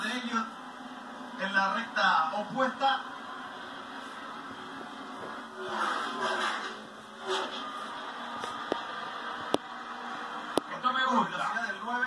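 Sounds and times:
race car engines on television: 0:00.0 - 0:12.0.

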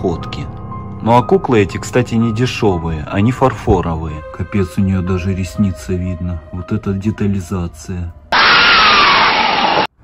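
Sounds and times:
falling tone: 0:08.4 - 0:09.9
harsh noise burst: 0:08.4 - 0:09.9.

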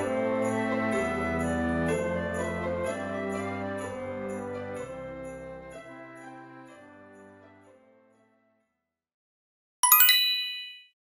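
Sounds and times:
bright bell-like chime: 0:09.8 - 0:11.0.

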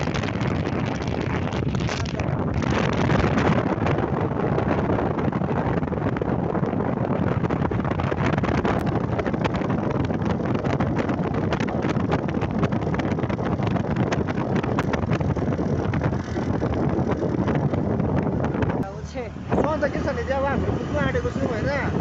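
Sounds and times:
vehicle and road noise: 0:00.0 - 0:22.0
wind buffeting microphone: 0:00.0 - 0:22.0.

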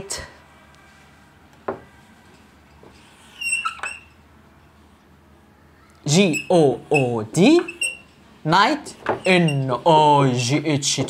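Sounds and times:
marker squeaking on whiteboard: 0:01.7 - 0:04.2, 0:06.0 - 0:10.4.

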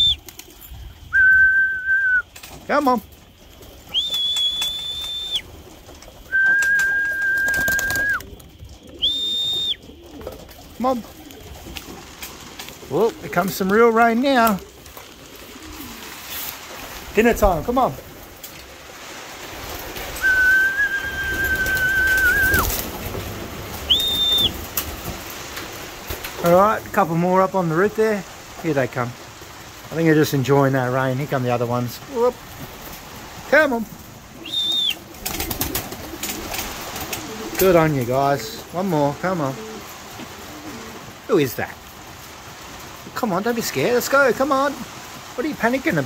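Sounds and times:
long whistled notes: 0:01.1 - 0:02.3, 0:03.9 - 0:05.5, 0:06.2 - 0:08.2, 0:09.0 - 0:09.8, 0:20.2 - 0:22.7, 0:23.9 - 0:24.6, 0:34.4 - 0:35.0.

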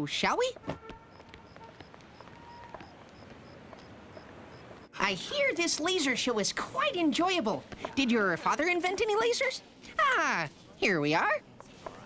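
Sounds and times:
cricket chirping: 0:00.8 - 0:05.0.

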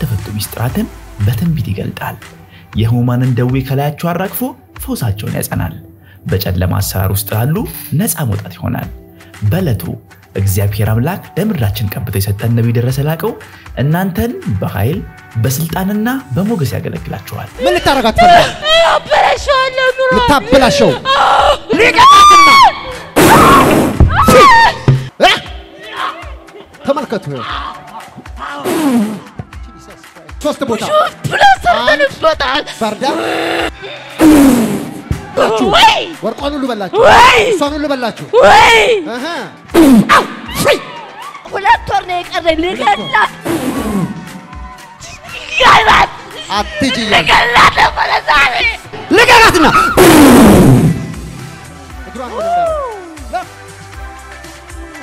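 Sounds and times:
high-pitched held shout: 0:17.6 - 0:26.4, 0:37.0 - 0:37.6, 0:38.3 - 0:39.1, 0:42.6 - 0:44.2, 0:44.9 - 0:50.2, 0:52.3 - 0:53.2.

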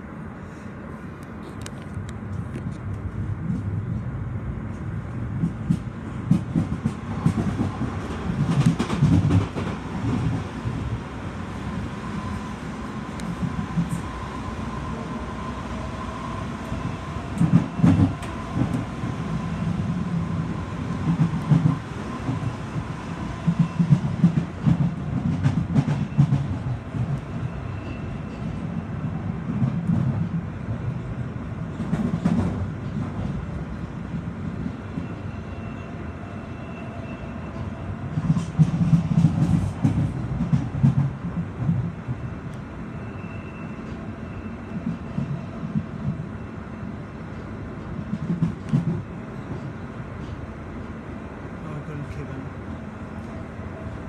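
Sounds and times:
train wheels rumbling on rail: 0:00.0 - 0:54.0
train rattle and clatter: 0:01.0 - 0:36.0, 0:36.6 - 0:54.0.

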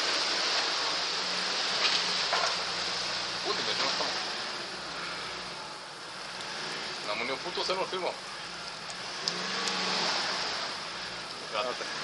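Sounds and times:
suv engine running under load: 0:00.0 - 0:12.0.

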